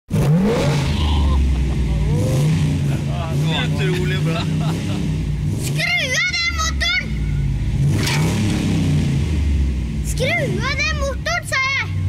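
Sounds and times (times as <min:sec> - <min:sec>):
engine revving and rumbling: 0:00.1 - 0:12.0.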